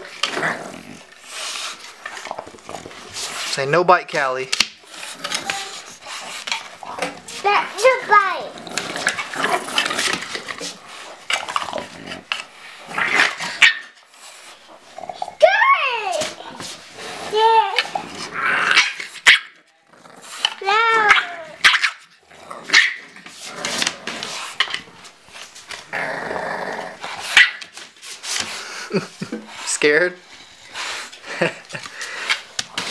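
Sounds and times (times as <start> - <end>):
dogs growling: 0.0 - 3.5, 4.8 - 15.5, 16.4 - 27.4
dogs barking: 18.7 - 19.6, 21.1 - 22.1, 22.7 - 23.1, 27.2 - 27.7
dog yelping: 20.7 - 22.1.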